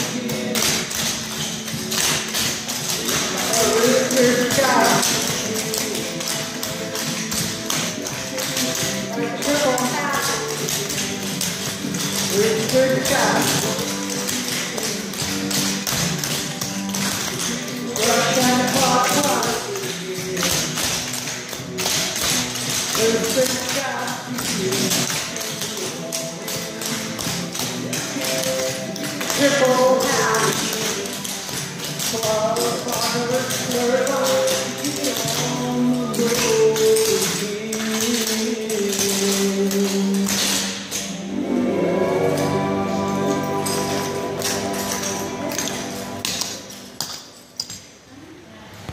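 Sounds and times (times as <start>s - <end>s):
tap shoes clicking on board floor: 0.0s - 41.1s
music playing: 0.0s - 47.7s.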